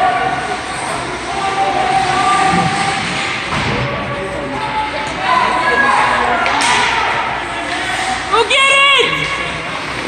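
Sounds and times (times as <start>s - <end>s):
echoing hall noise: 0.0s - 10.0s.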